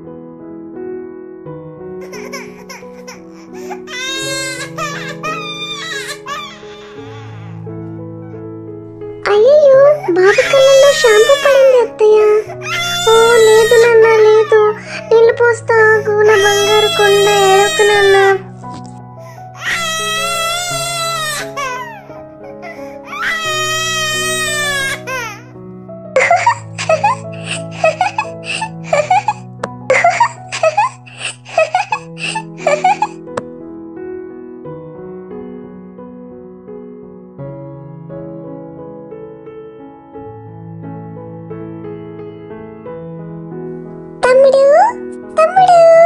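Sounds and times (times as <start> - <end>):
gentle keyboard music: 0.0 - 46.0
baby crying: 2.0 - 7.7, 9.3 - 25.5, 26.2 - 33.2
baby giggling: 26.2 - 33.2.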